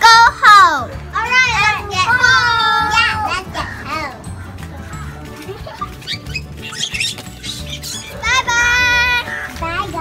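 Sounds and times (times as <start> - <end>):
young children calling out: 0.0 - 4.4, 7.8 - 10.0.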